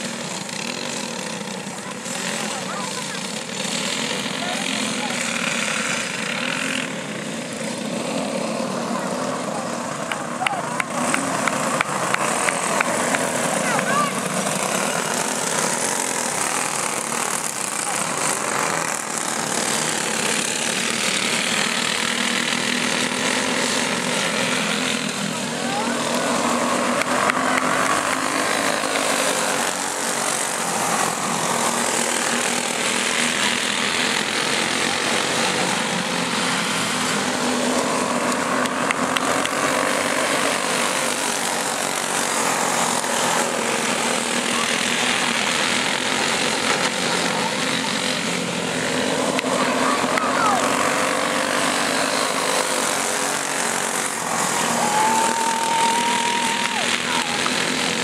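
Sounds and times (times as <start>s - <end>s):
go-kart engines buzzing: 0.0s - 58.0s.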